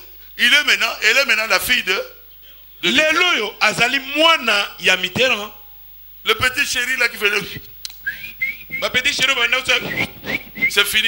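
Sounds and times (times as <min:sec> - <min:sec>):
person whistling: 0:08.0 - 0:09.1, 0:09.7 - 0:11.0.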